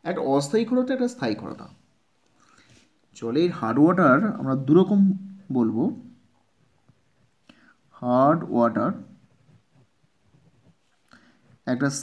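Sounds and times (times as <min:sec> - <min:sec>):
faint breath: 0:02.4 - 0:03.0, 0:07.4 - 0:07.9, 0:11.0 - 0:11.6.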